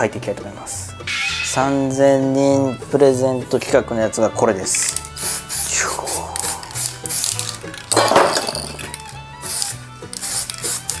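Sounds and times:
spray can ball rattling: 0:04.7 - 0:11.0.

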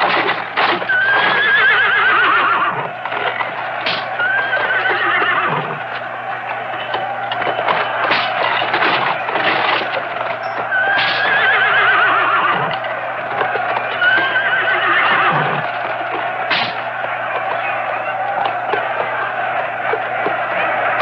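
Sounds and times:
hooves clattering and stamping: 0:00.0 - 0:21.0
horses neighing: 0:00.0 - 0:21.0.

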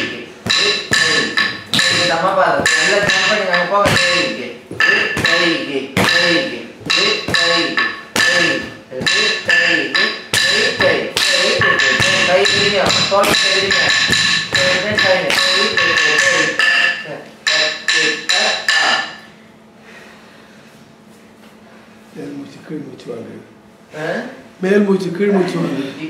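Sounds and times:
person reciting rhythm syllables: 0:00.0 - 0:19.3
sharp ringing strikes: 0:00.0 - 0:19.3.

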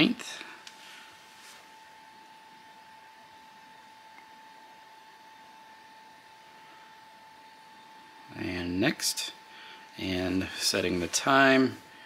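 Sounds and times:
faint steady whine: 0:00.0 - 0:12.0
steady hiss: 0:08.3 - 0:12.0.

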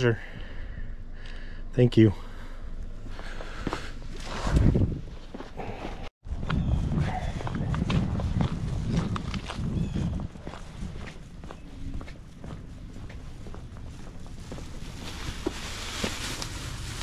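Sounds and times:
footsteps walking: 0:03.0 - 0:16.5
rustling and handling noise: 0:10.4 - 0:17.0.

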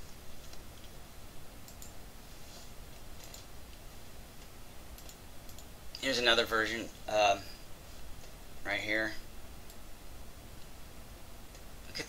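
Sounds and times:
low steady hum: 0:00.0 - 0:12.0
computer mouse clicks: 0:01.6 - 0:02.0, 0:02.9 - 0:03.8, 0:04.4 - 0:06.0.

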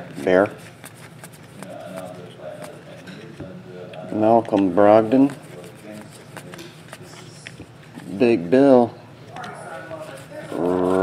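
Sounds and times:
trading cards rustling: 0:00.0 - 0:03.4, 0:04.0 - 0:08.5, 0:09.4 - 0:11.0.

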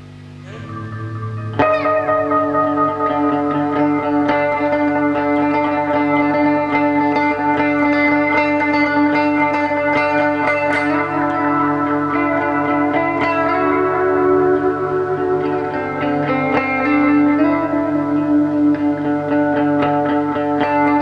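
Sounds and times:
electric guitar with reverb: 0:00.0 - 0:21.0
low amp hum: 0:00.0 - 0:21.0.

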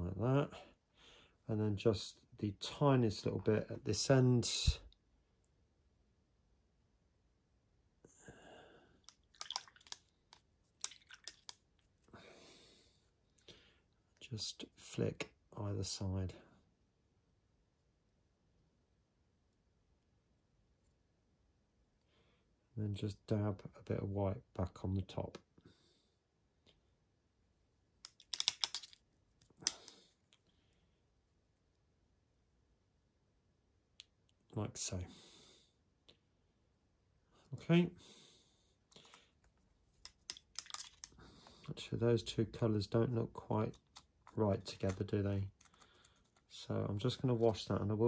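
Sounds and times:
plastic clicks and taps: 0:28.0 - 0:29.0
clicks of handling plastic model: 0:28.0 - 0:30.5, 0:38.9 - 0:41.6, 0:43.6 - 0:46.6.

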